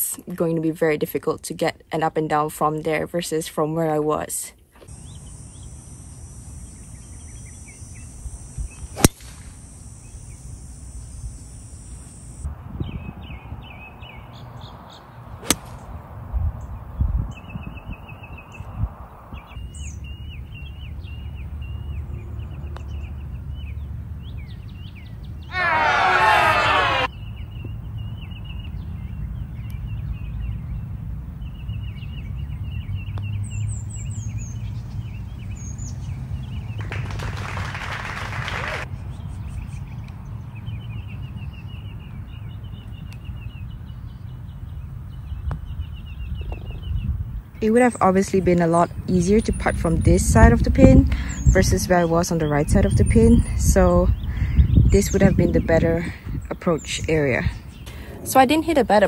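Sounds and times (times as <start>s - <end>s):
birds chirping: 4.8s - 59.0s
golf club striking ball: 9.0s - 9.5s, 15.4s - 15.8s.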